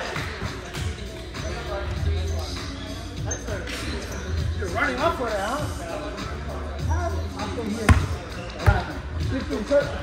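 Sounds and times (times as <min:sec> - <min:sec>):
ball bouncing on gym floor: 0:07.9 - 0:08.9.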